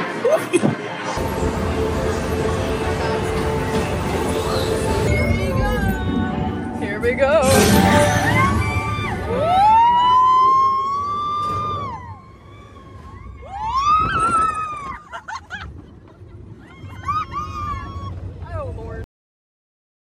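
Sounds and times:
riders screaming: 16.6 - 18.3.

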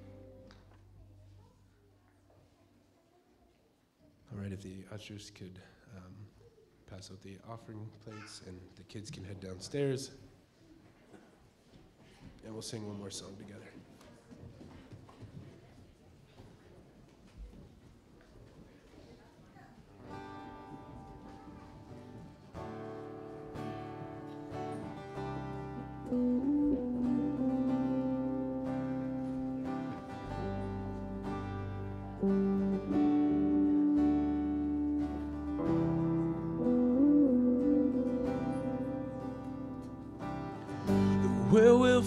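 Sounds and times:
electric guitar: 0.0 - 1.1, 20.2 - 42.0
low bass notes: 0.0 - 1.4, 24.6 - 42.0
piano: 0.0 - 1.4, 20.3 - 42.0
strummed acoustic guitar: 22.3 - 42.0
person singing: 25.8 - 29.7, 32.2 - 39.5, 40.7 - 42.0.

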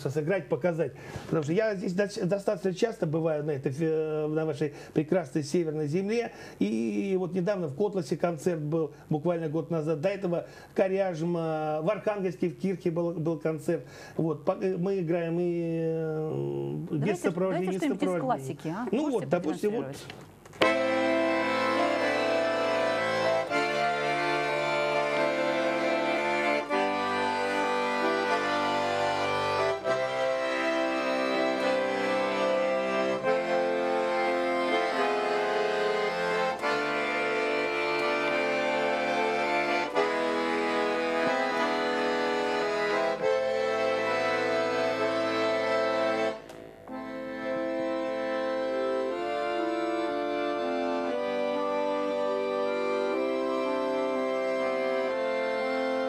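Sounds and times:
button accordion playing: 15.0 - 19.9, 20.6 - 56.0.

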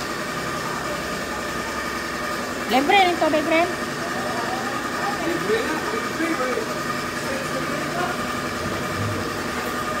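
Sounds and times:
mechanical hum: 0.0 - 10.0.

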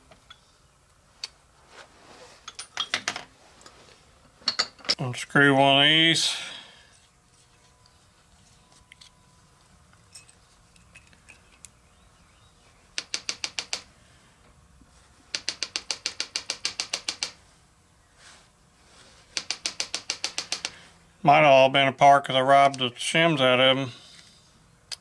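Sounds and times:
small metal parts clinking: 4.4 - 5.0, 8.4 - 11.7.

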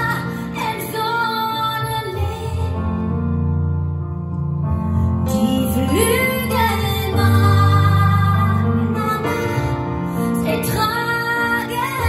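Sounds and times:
woman singing into microphone: 0.0 - 3.0, 5.4 - 12.0
piano accompaniment: 0.0 - 12.0.

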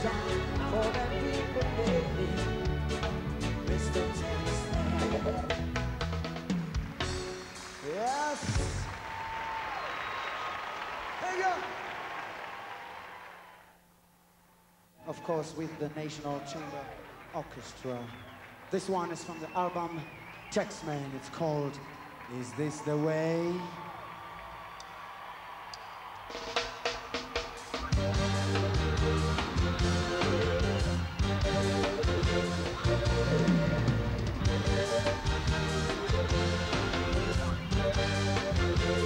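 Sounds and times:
reggae band with orchestra: 0.0 - 8.9, 26.2 - 39.0
audience applause: 6.7 - 13.7, 15.1 - 37.7.

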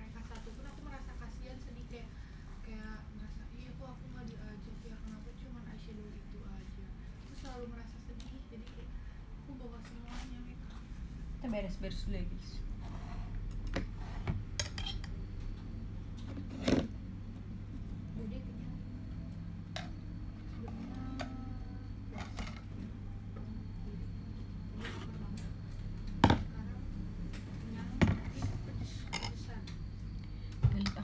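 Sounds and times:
steady low hum: 0.0 - 31.0
dishes and utensils clinking: 14.6 - 15.2, 29.0 - 29.4.

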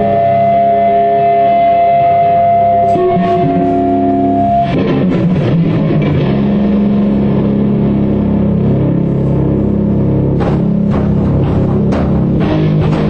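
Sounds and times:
punk rock band playing: 2.8 - 13.0.

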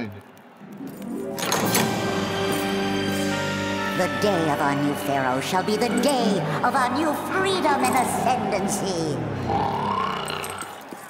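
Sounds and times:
cartoon cat snoring: 9.4 - 10.8.

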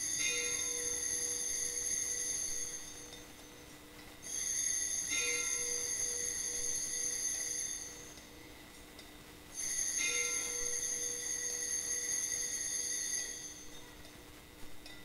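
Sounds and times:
altar bells ringing: 0.0 - 3.4, 4.2 - 8.2, 9.6 - 13.9.

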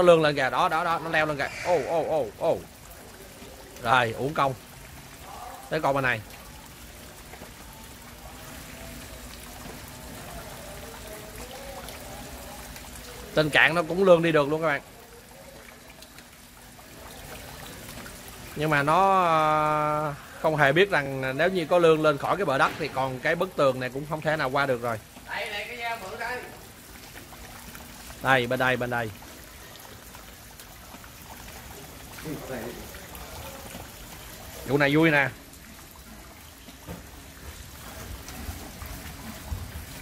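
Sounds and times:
man talking: 0.0 - 2.7, 18.6 - 26.6
rain falling on a pond: 0.0 - 40.0
rainwater trickling and pouring: 0.0 - 40.0.

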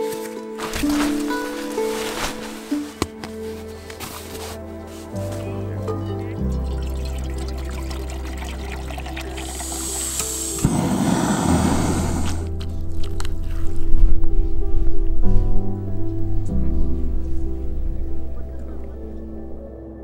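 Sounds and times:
background music with low notes: 0.0 - 20.0
water poured into metal pot: 6.4 - 10.6.

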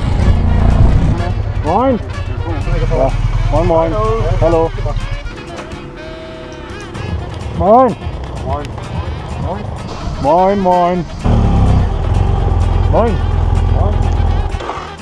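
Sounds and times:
motorcycle engines idling: 0.0 - 15.0
voices calling greetings: 0.4 - 14.6.

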